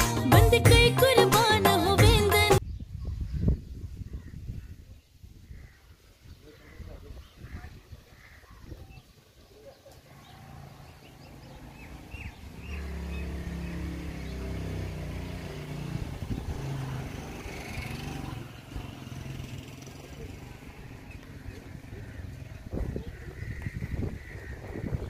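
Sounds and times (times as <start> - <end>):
vehicle engine running: 10.9 - 24.3.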